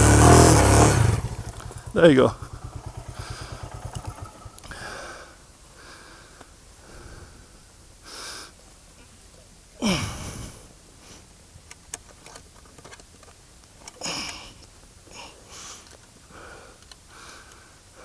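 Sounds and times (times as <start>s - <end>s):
man breathing hard: 3.1s - 4.0s, 4.6s - 8.6s, 14.0s - 18.0s
man grunting: 9.8s - 10.3s.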